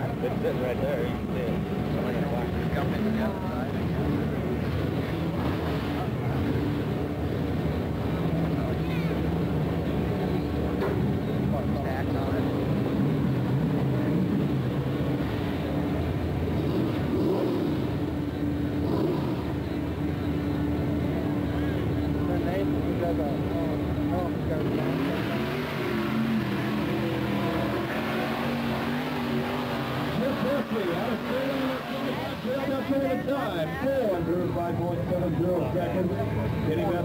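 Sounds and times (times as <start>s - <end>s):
truck engine running: 0.0s - 37.0s.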